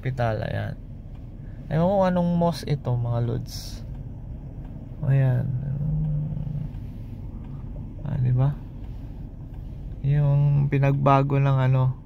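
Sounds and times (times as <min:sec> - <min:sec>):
low hum: 0:00.0 - 0:12.0
vehicle rumble from inside cabin: 0:00.0 - 0:12.0.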